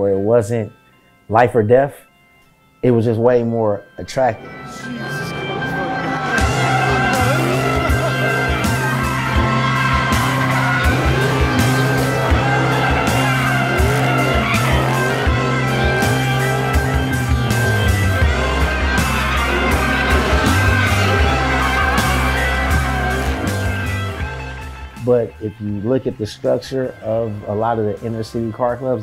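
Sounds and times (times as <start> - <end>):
tires squealing: 4.4 - 25.0
music with steady beat: 4.4 - 25.4
car engine revving: 4.4 - 25.9.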